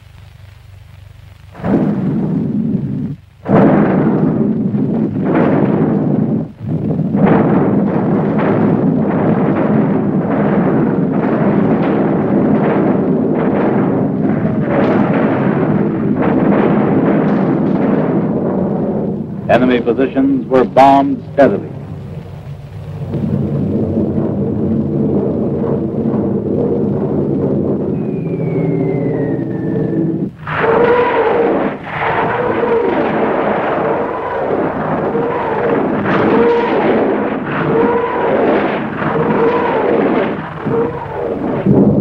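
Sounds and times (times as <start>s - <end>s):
artillery gun blasts: 1.3s - 42.0s.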